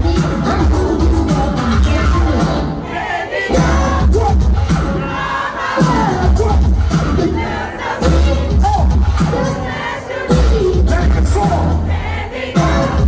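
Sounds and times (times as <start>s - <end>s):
hip-hop music over pa: 0.0s - 13.0s
crowd shouting along: 2.8s - 13.0s.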